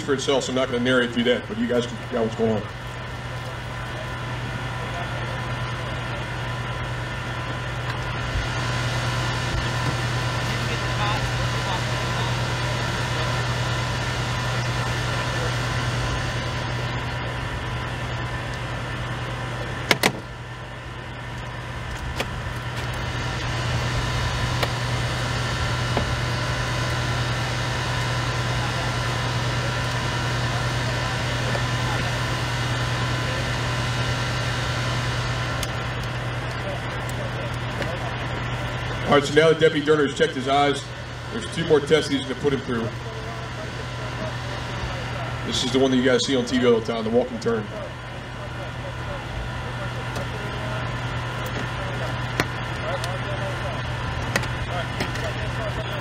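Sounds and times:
vehicle engine idling: 0:00.0 - 0:56.0.

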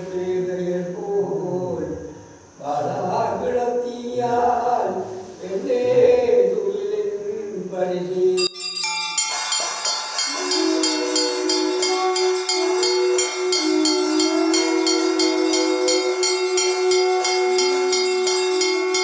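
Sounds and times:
hand bell rung rapidly: 0:08.4 - 0:19.0
reed pipes playing: 0:09.6 - 0:19.0.

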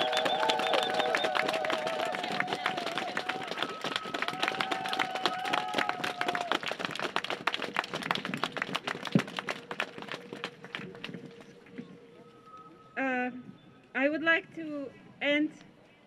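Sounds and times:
crowd clapping: 0:00.0 - 0:11.8.

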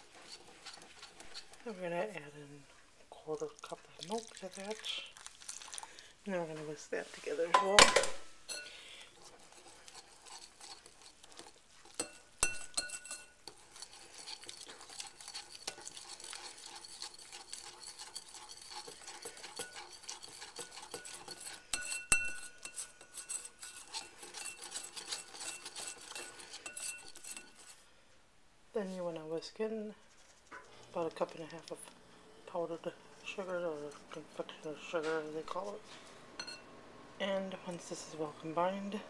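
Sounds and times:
whisk scraping against bowl: 0:00.0 - 0:02.4, 0:08.5 - 0:27.8, 0:32.5 - 0:36.6
whisk clinking on bowl: 0:09.4 - 0:27.8, 0:36.4 - 0:36.7.

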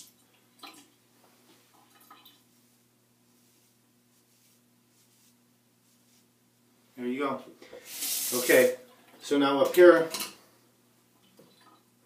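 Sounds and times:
low steady hum: 0:00.0 - 0:08.0.

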